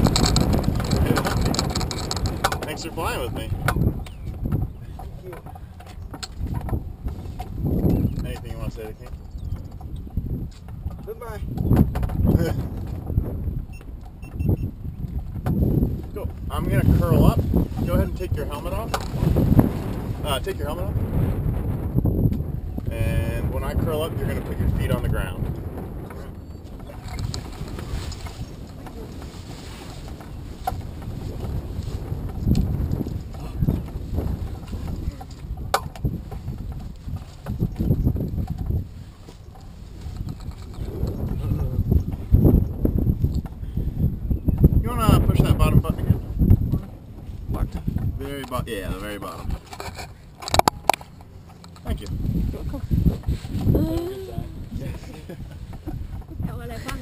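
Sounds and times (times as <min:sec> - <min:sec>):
wind buffeting microphone: 0:00.0 - 0:57.0
rustling of harness and clothing: 0:26.6 - 0:42.4.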